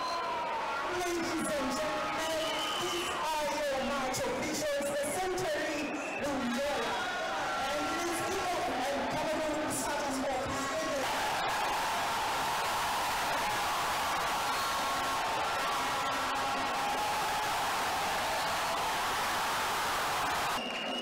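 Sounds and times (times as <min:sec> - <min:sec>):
stadium crowd din: 0:00.0 - 0:21.0.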